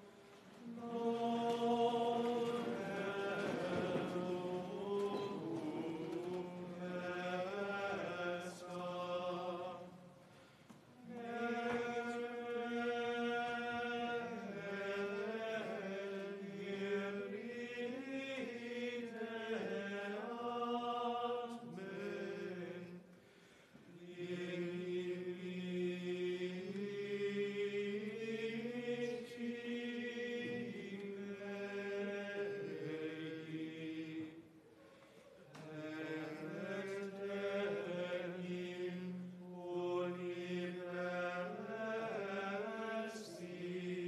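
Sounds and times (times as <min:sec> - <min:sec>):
plainchant singing: 0:00.0 - 0:44.0.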